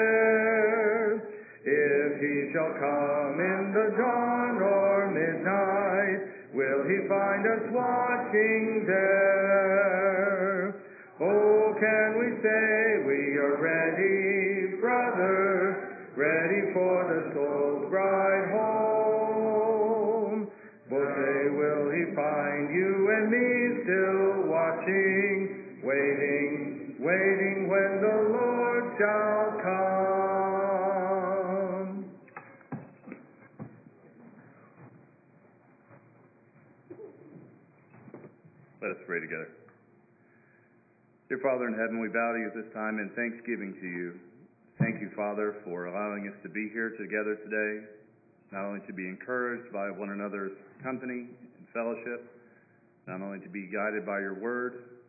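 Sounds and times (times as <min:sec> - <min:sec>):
congregation singing a hymn: 0:00.0 - 0:32.1
man leading hymn singing: 0:00.0 - 0:32.2, 0:41.3 - 0:44.2, 0:44.8 - 0:52.4, 0:53.0 - 0:55.0
man speaking: 0:38.8 - 0:39.6.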